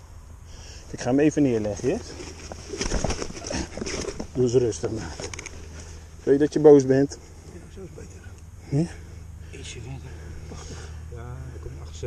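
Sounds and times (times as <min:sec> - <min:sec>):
plastic mat rustling: 0:01.6 - 0:06.0.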